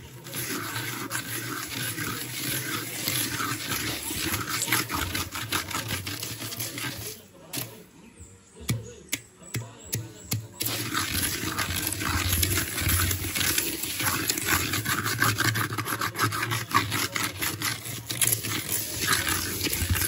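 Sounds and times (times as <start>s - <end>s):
granules scraped in metal pan: 0.0s - 7.8s, 10.6s - 20.0s.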